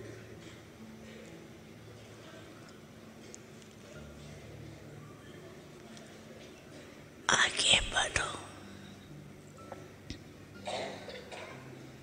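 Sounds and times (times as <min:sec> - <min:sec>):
person whispering: 0:07.3 - 0:08.7.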